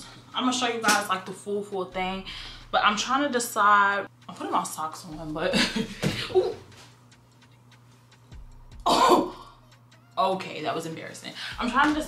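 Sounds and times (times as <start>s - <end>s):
woman clearing throat: 8.8s - 9.4s.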